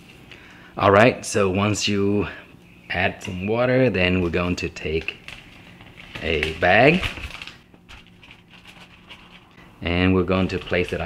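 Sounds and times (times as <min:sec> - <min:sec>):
plastic bag rustling: 0:04.0 - 0:09.6, 0:10.3 - 0:11.0.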